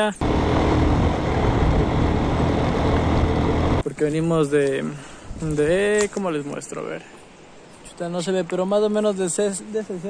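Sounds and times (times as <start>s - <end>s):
wind buffeting microphone: 0.2s - 3.8s.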